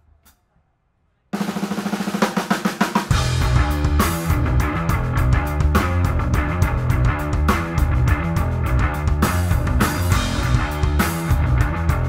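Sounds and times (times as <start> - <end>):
drum kit run of strokes: 1.4 - 12.0
electric guitar: 3.1 - 12.0
low bass notes: 3.1 - 12.0.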